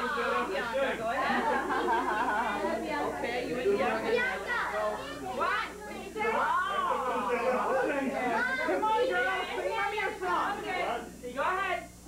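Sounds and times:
people chatting: 0:00.0 - 0:11.9
children's voices: 0:01.3 - 0:07.0, 0:08.2 - 0:10.6.

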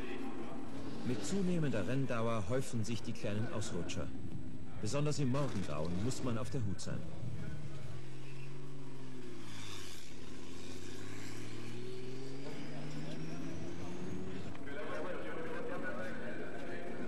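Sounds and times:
racing car engines accelerating: 0:05.0 - 0:17.0.

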